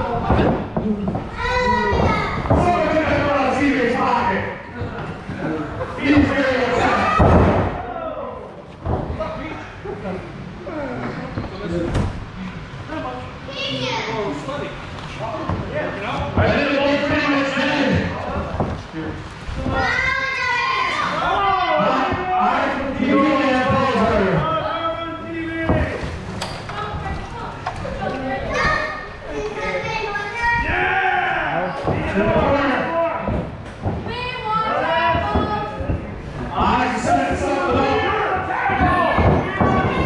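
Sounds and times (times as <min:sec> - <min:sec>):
young voices shouting: 0:19.8 - 0:26.0, 0:28.5 - 0:33.4, 0:34.1 - 0:40.0.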